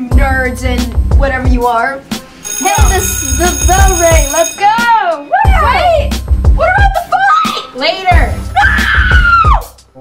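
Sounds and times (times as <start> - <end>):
background music with steady beat: 0.0 - 10.0
child screaming: 8.6 - 9.6.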